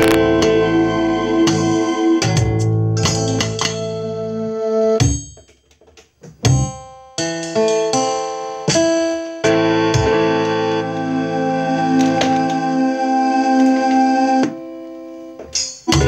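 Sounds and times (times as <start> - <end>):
piano chords ringing: 0.0 - 4.8, 6.8 - 16.0.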